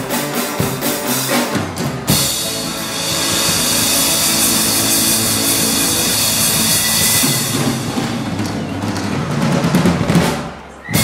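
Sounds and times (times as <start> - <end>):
live rock band playing: 0.0 - 11.0
cymbals crashing: 2.0 - 8.9.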